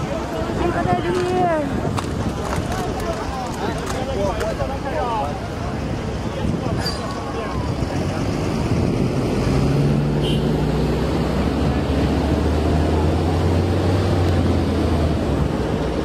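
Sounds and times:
heavy vehicle engine hum: 0:00.0 - 0:16.0
road traffic noise: 0:00.0 - 0:16.0.

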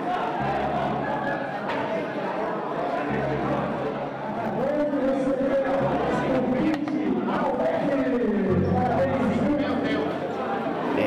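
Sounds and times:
crowd chattering: 0:00.0 - 0:11.0
man talking: 0:04.4 - 0:10.2.

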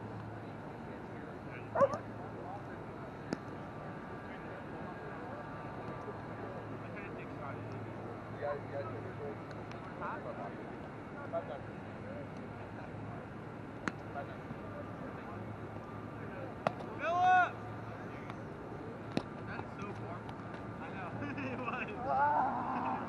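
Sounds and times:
person shouting: 0:22.0 - 0:23.0.

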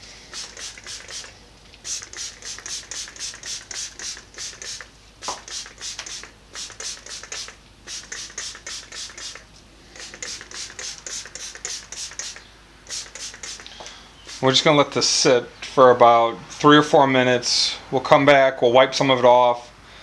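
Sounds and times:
spray bottle squeezes hissing: 0:00.0 - 0:14.8.

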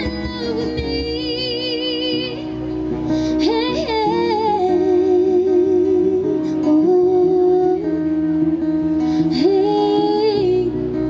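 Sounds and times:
cajon: 0:00.0 - 0:01.3
bass guitar: 0:00.0 - 0:11.0
strummed acoustic guitar: 0:00.0 - 0:11.0.

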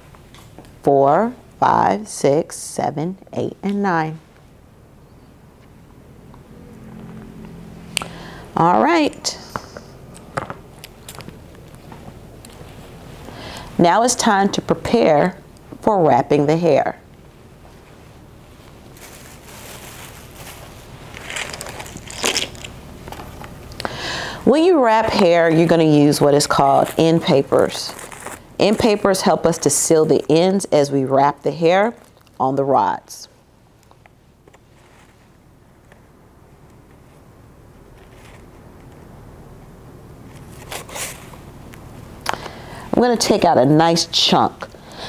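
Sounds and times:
thin papers rustling: 0:18.6 - 0:23.5, 0:26.4 - 0:29.2, 0:40.3 - 0:41.4
plastic bag crinkling: 0:18.6 - 0:23.6, 0:26.5 - 0:29.1, 0:31.9 - 0:32.4.

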